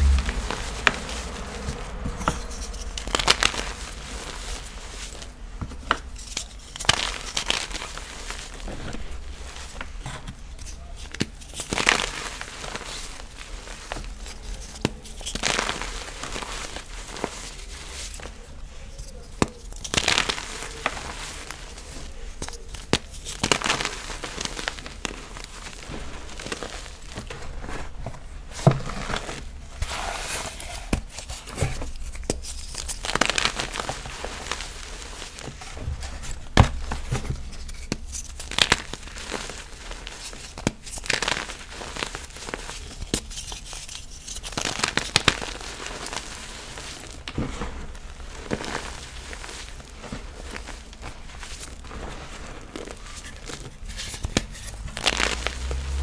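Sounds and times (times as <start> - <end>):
powder crunching and crumbling: 0.0 - 56.0.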